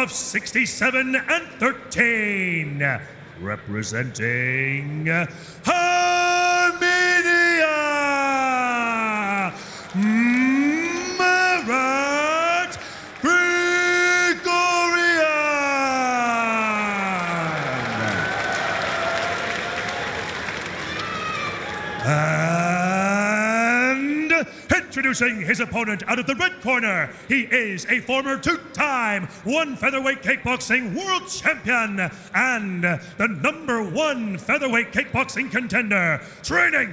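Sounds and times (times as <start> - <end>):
man calling out in sung tone: 2.2 - 17.9, 22.0 - 28.2
man holding long rising vowel: 5.7 - 12.5, 22.0 - 24.0.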